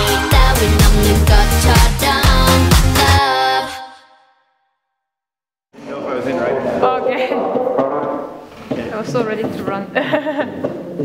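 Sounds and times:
music: 0.0 - 4.9.

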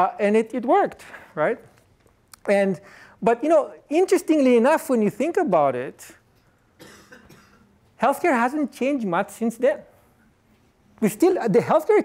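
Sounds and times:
faint cough: 6.8 - 7.8.

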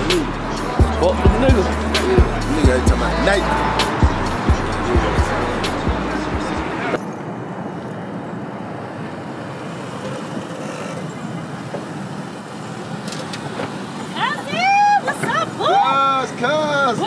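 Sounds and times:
minivan pulling up: 0.0 - 7.0.

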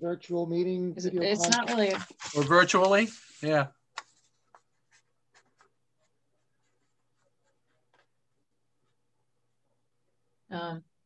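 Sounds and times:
scratchy writing strokes: 4.0 - 8.2.

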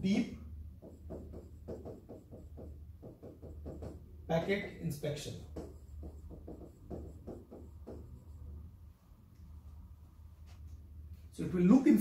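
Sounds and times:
stylus scratching on glass screen: 5.6 - 8.6.

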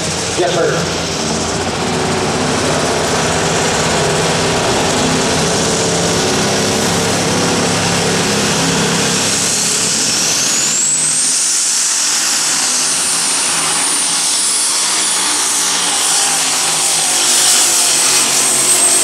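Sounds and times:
diesel tractor engine running: 0.0 - 19.0
turbocharger whine: 0.0 - 19.0.

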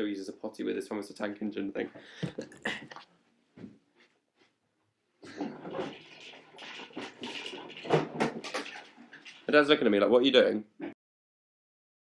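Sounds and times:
plastic toys clattering and knocking: 5.3 - 9.8.

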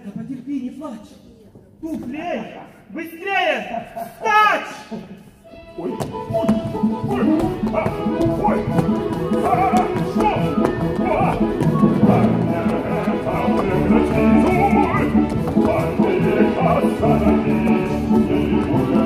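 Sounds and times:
lively dance music: 5.0 - 19.0.

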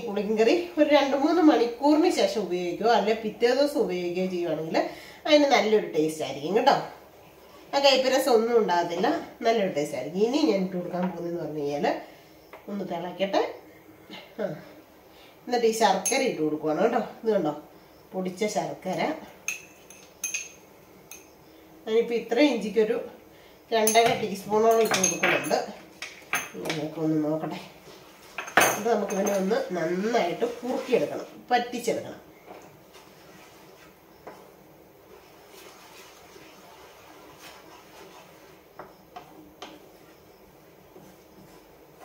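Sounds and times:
metal spoon clinking on glass bowl: 16.0 - 16.4, 19.5 - 21.3, 23.9 - 25.6, 28.4 - 29.5.

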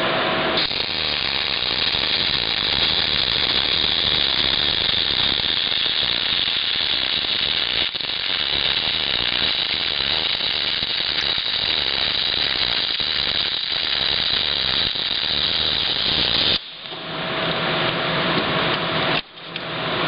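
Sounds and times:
welding arc crackling: 0.6 - 17.0.

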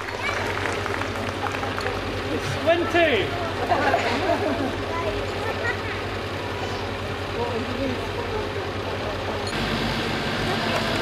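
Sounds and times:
diesel truck engine running: 0.0 - 11.0.

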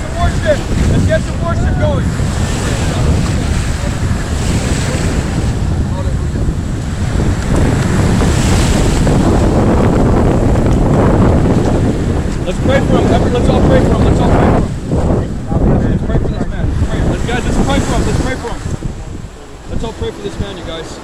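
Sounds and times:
surf washing: 0.0 - 21.0
wind buffeting microphone: 0.0 - 21.0.

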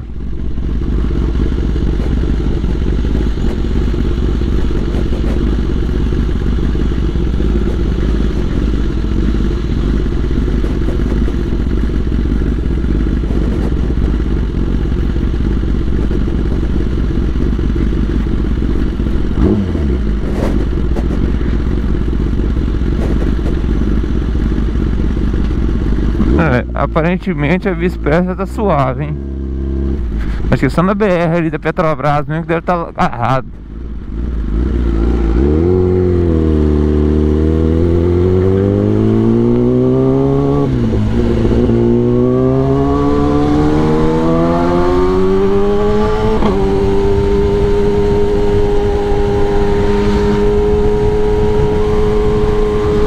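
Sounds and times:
motorcycle engine rumbling: 0.0 - 53.0.

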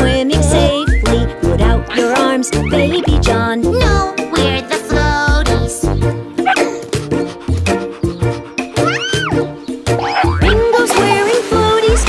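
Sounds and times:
children's song backing music: 0.0 - 12.0
cartoon dog yelp: 8.8 - 9.4, 10.0 - 10.5.

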